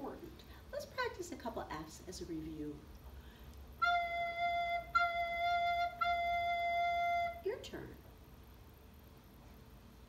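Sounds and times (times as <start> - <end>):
soprano recorder notes: 3.8 - 7.6.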